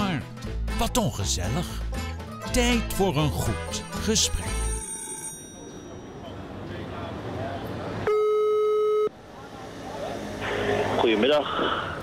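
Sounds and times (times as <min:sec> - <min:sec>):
street traffic noise: 0:04.8 - 0:12.0
steady telephone tone: 0:08.1 - 0:09.2.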